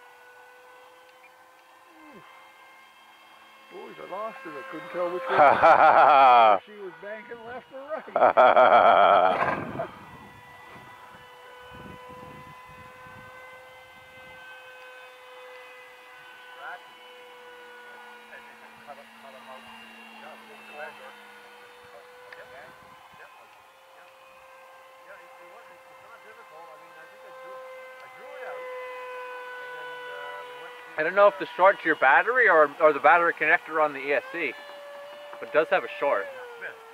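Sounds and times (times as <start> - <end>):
model plane motor whining: 0.0 - 36.9.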